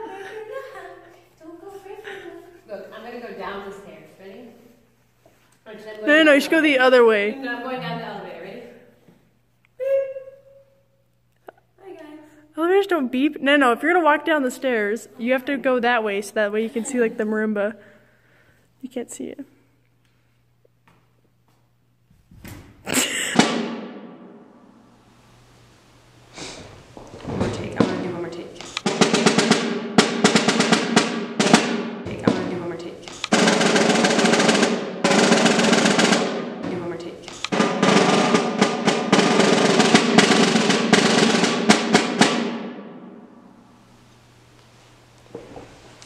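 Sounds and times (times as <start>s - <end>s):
snare drum strokes and rolls: 23.4s - 24.4s, 26.4s - 43.2s.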